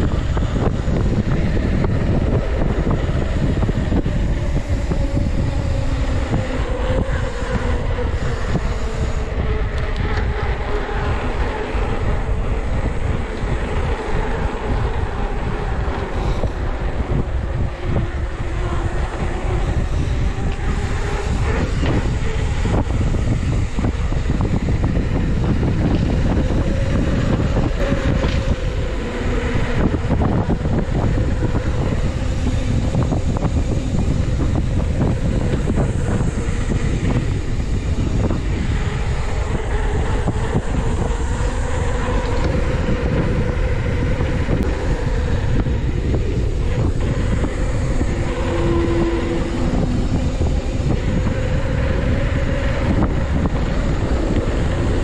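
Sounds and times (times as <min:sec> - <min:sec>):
tyres humming on pavement: 0:00.0 - 0:55.0
wind buffeting microphone: 0:00.0 - 0:55.0.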